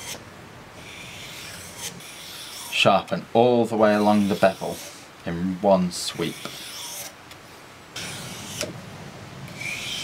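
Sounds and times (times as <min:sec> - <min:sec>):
blade rubbing on abrasive paper: 0:00.8 - 0:02.8, 0:03.7 - 0:05.0, 0:06.0 - 0:07.1, 0:08.0 - 0:08.7, 0:09.5 - 0:10.0.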